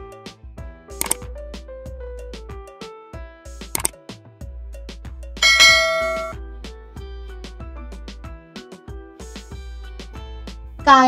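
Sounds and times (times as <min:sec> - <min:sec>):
background music: 0:00.0 - 0:11.0
bell-like chime: 0:05.4 - 0:06.4.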